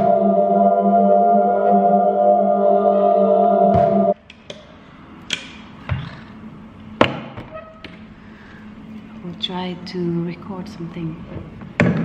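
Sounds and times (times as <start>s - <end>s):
loud many-toned drone: 0.0s - 4.2s.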